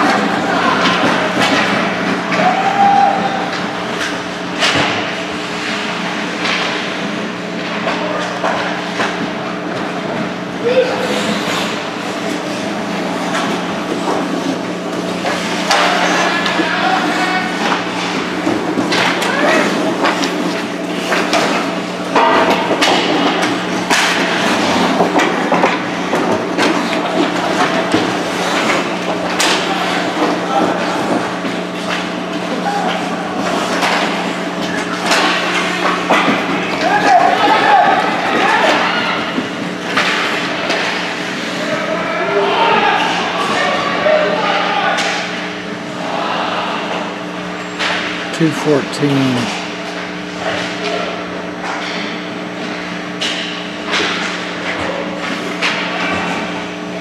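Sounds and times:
spectators calling out: 48.4s - 49.6s.

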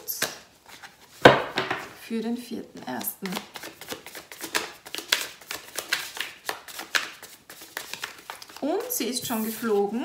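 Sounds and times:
cards being shuffled: 2.8s - 9.8s.

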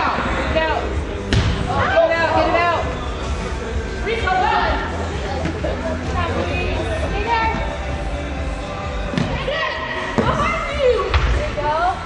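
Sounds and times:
spectators and players voices: 0.0s - 12.0s.

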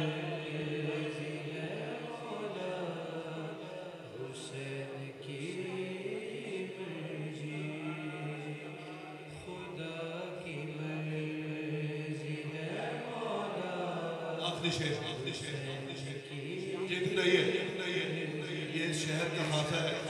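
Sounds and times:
men chanting together: 0.0s - 20.0s.

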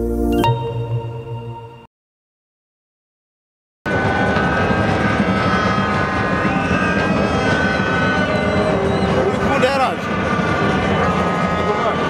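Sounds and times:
stadium crowd noise: 3.9s - 12.0s.

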